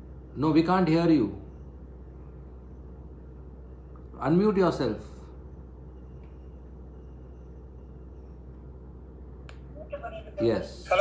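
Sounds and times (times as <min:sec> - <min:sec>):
low electrical hum: 0:00.0 - 0:11.0
person speaking: 0:09.8 - 0:11.0.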